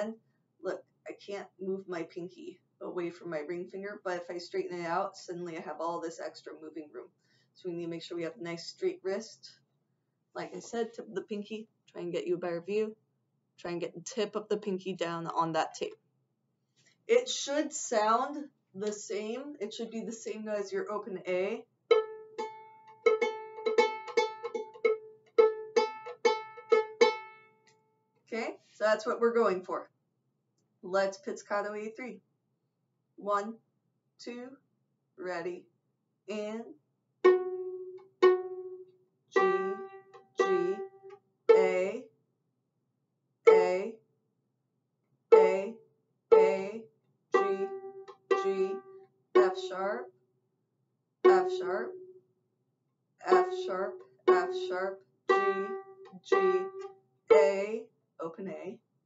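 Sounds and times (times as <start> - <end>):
viola plucked notes: 21.9 - 27.6, 37.2 - 41.8, 47.4 - 50.0, 51.2 - 52.2, 53.3 - 57.6.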